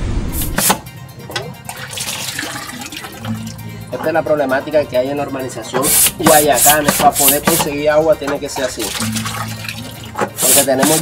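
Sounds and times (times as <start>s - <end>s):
background music: 0.0s - 11.0s
water pouring into plastic barrel: 1.7s - 3.4s, 8.8s - 11.0s.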